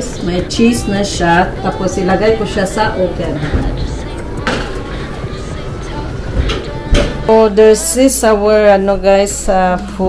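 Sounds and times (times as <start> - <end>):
low kitchen noise: 0.0 - 10.0.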